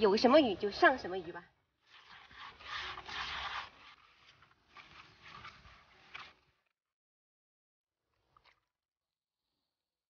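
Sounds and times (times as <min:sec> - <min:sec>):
hand scraping bait in plastic bowl: 0:01.8 - 0:06.6.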